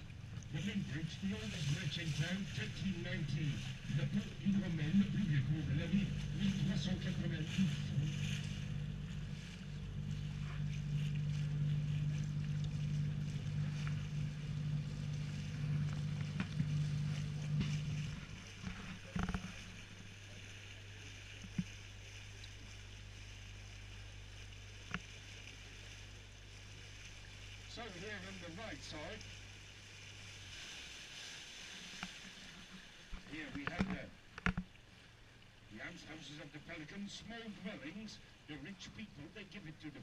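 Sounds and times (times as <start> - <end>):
boat motor humming: 0.0 - 40.0.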